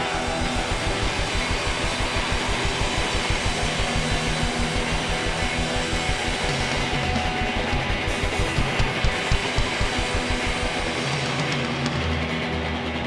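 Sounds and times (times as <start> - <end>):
drum kit fast rhythm: 0.0 - 12.6
electric guitars: 0.0 - 13.0.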